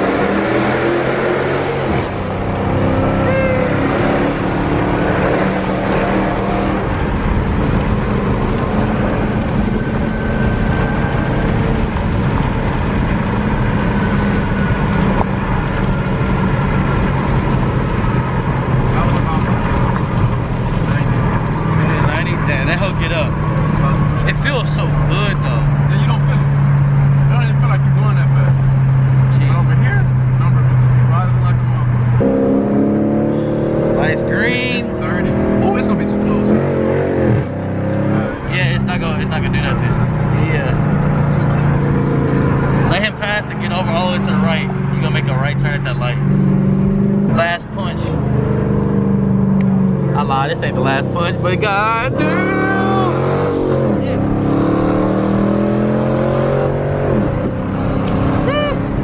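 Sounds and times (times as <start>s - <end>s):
car engine drone from cabin: 23.2s - 59.0s.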